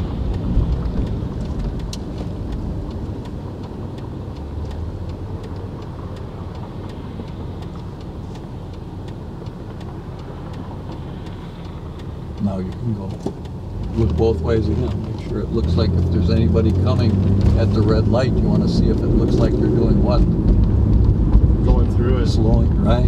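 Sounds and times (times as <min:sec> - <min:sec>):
car cabin road rumble: 0:00.0 - 0:23.0
turn signal ticking: 0:00.0 - 0:23.0.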